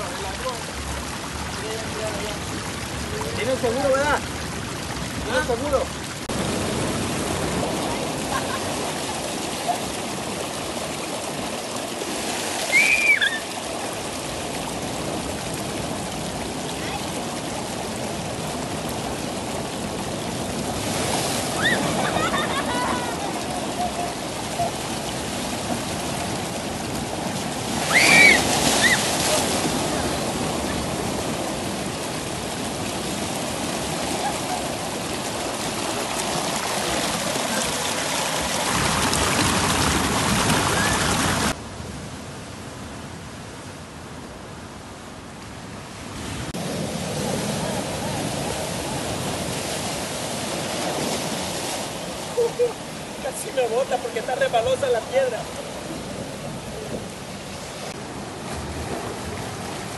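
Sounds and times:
surf breaking on rocks: 0.0 - 41.6, 46.2 - 59.9
water rushing through rocks: 0.0 - 42.0, 45.6 - 59.9
short high cries: 12.7 - 13.5, 27.9 - 29.1.

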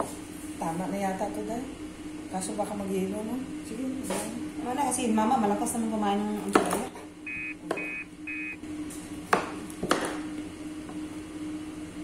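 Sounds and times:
steady low hum: 0.0 - 12.0
electronic beeper beeping: 7.2 - 8.6.

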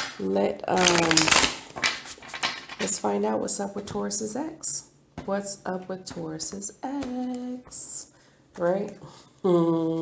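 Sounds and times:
cards being shuffled: 0.8 - 2.8.

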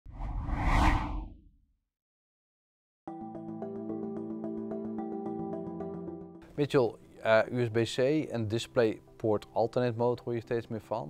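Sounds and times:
whoosh with deep rumble: 0.1 - 1.6.

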